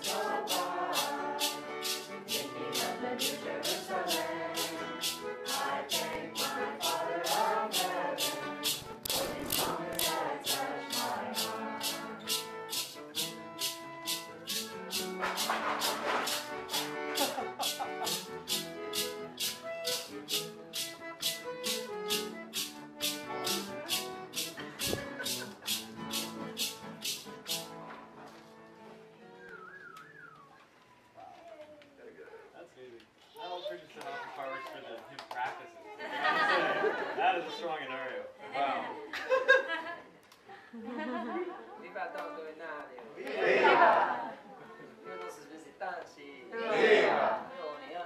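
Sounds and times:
voices singing together: 0:00.0 - 0:12.6, 0:43.2 - 0:44.4, 0:46.5 - 0:47.5
shaker beat: 0:00.0 - 0:27.8.

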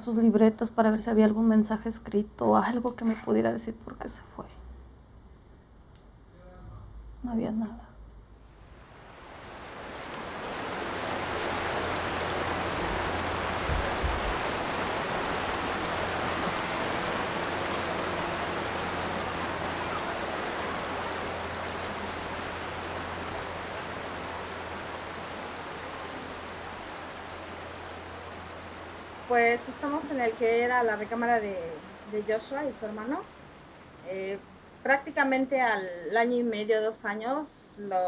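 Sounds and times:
rushing water: 0:08.5 - 0:34.8.

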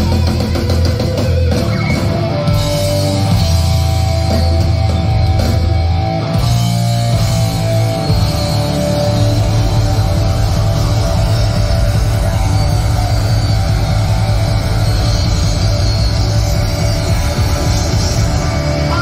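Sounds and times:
drums: 0:00.0 - 0:19.0
electric guitars: 0:00.0 - 0:19.0
heavy metal band playing live: 0:00.0 - 0:19.0.

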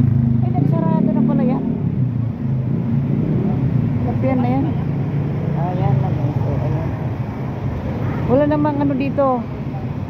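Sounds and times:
cars passing with tyre rumble: 0:00.0 - 0:10.0.

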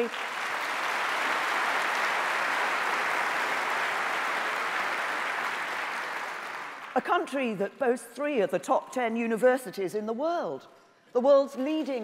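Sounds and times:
audience applauding: 0:00.0 - 0:07.0.

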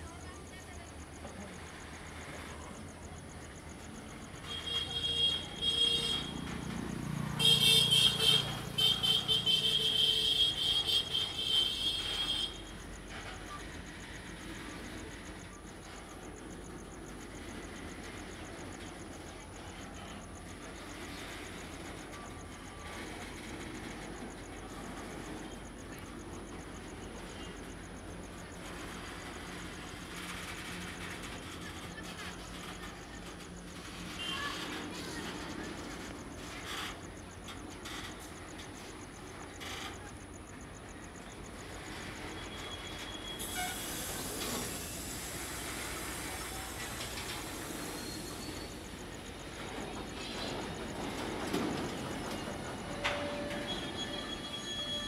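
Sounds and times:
freight train rolling on track: 0:00.0 - 0:55.0
loud shrill tone: 0:53.0 - 0:55.0.

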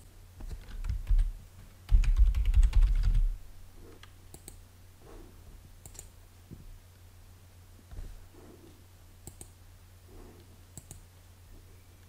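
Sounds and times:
faint low hum: 0:00.0 - 0:12.0
typing on computer keyboard: 0:00.4 - 0:01.3, 0:01.9 - 0:03.4.

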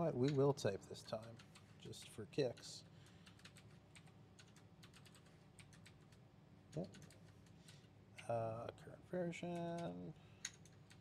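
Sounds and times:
typing on computer keyboard: 0:01.0 - 0:07.6, 0:09.5 - 0:11.0.

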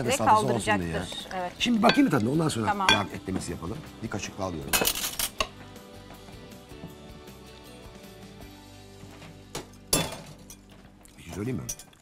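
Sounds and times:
quiet background music: 0:00.0 - 0:12.0
utensil clinking glass bowl: 0:01.6 - 0:03.5, 0:09.9 - 0:12.0.

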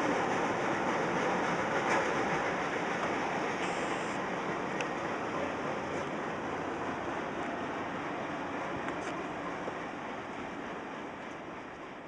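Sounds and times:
faint clicks of rails: 0:00.0 - 0:06.2, 0:07.4 - 0:11.9
train wheels rumbling on track: 0:00.0 - 0:12.0.

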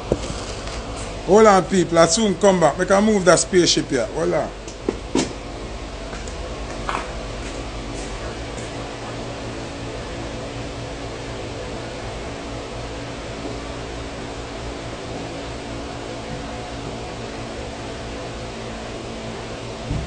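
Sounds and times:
machine hum with hiss: 0:00.0 - 0:20.0.

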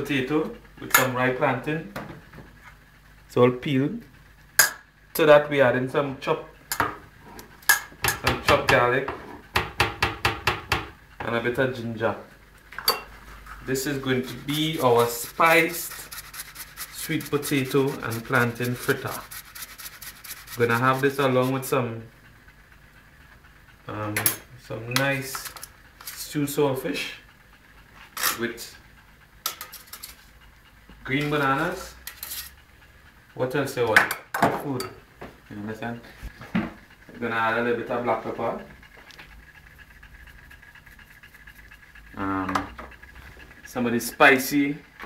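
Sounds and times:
utensil knocking on bowl: 0:09.6 - 0:11.0.

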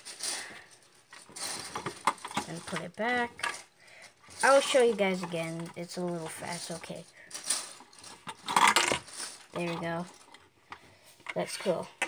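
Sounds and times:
plastic bricks clicking and clattering: 0:00.0 - 0:03.7, 0:04.3 - 0:12.0.

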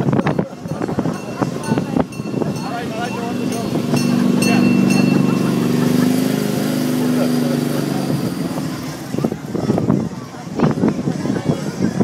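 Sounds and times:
steady engine drone: 0:00.0 - 0:12.0.

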